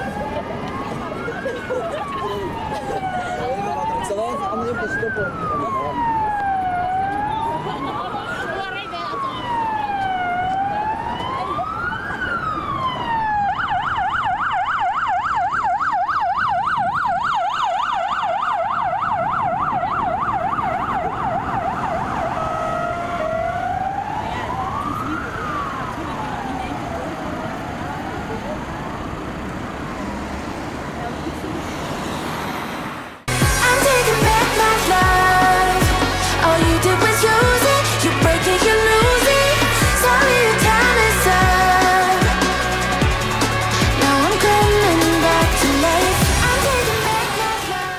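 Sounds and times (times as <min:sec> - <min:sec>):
emergency vehicle siren wail and yelp: 0:00.0 - 0:47.9.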